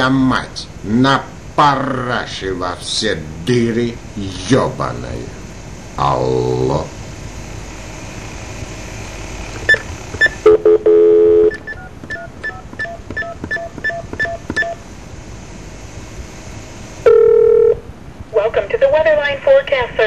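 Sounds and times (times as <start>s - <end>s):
telephone dial tone: 10.2s - 12.9s, 17.1s - 17.8s
touch-tone keypresses: 11.5s - 14.8s.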